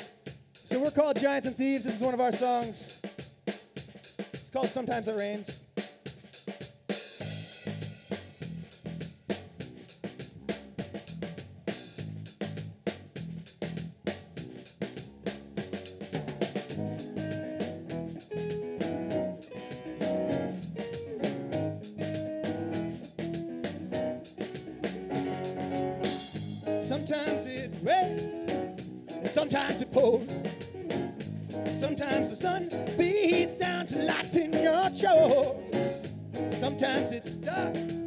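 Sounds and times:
drum kit beat: 0.0s - 38.0s
bass guitar line: 7.2s - 38.0s
guitar melody: 16.7s - 38.0s
keyboard notes: 16.7s - 38.0s.

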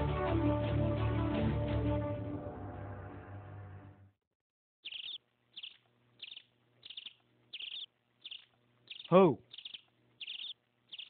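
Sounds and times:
faint high chirps: 4.8s - 11.0s.

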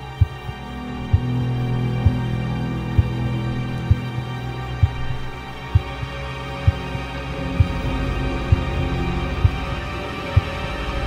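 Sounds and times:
dark horror music drone: 0.0s - 11.0s
low heartbeat-like thump: 0.2s - 4.2s, 4.8s - 6.1s, 6.7s - 6.9s, 7.6s - 7.9s, 9.4s - 9.7s.

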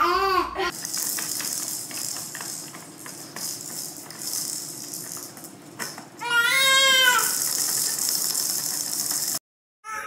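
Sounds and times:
plastic toy clicking and rattling: 0.7s - 9.4s.

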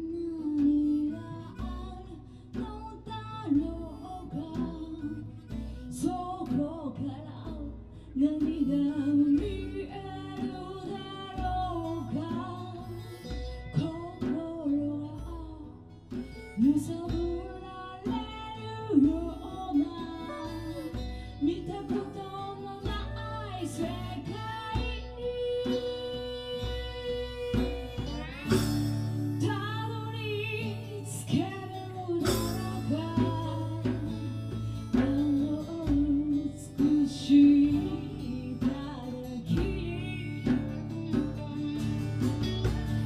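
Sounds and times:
strummed acoustic guitars: 0.0s - 43.0s
woman singing: 0.0s - 43.0s.

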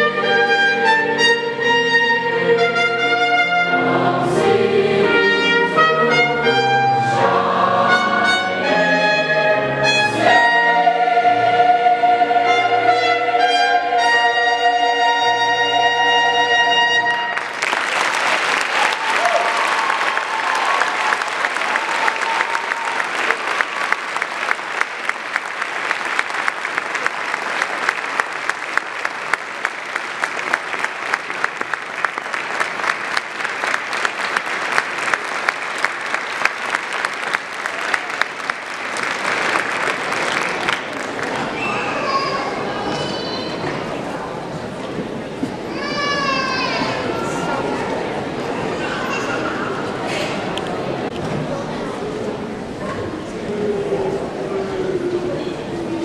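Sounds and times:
choir singing with piano: 0.0s - 17.3s
audience applauding: 17.3s - 42.6s.

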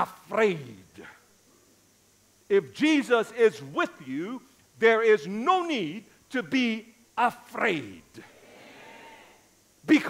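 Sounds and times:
preacher's amplified voice speaking: 0.0s - 1.2s, 2.5s - 8.3s
faint murmur of congregation voices: 7.6s - 10.0s.

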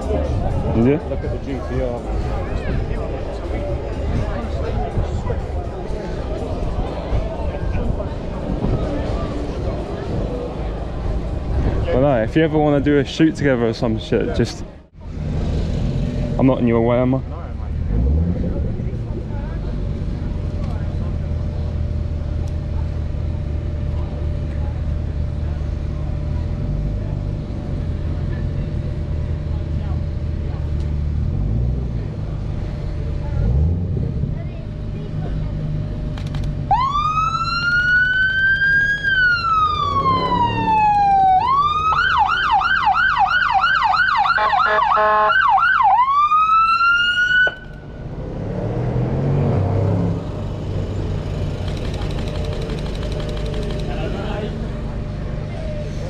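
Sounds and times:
low engine rumble: 0.0s - 56.0s
police siren wailing and yelping: 36.7s - 47.7s.

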